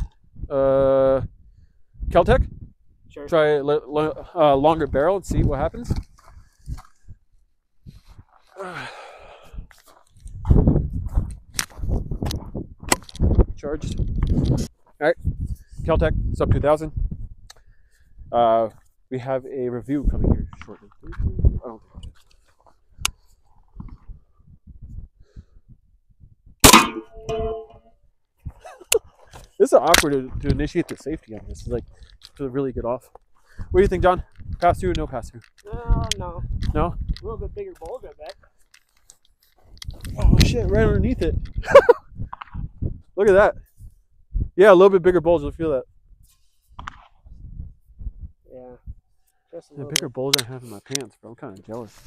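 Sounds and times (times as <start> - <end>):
wind buffeting microphone: 0.0 - 18.4, 19.7 - 38.4, 39.6 - 49.2
carbine gunshot: 26.6 - 27.1.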